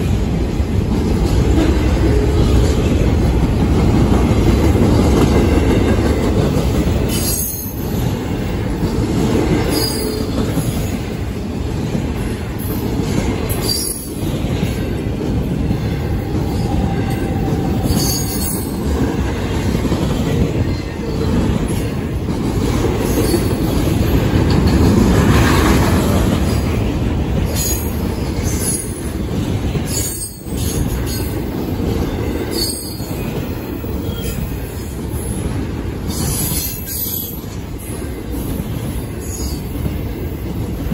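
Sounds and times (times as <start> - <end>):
freight train rumbling past: 0.0 - 40.9.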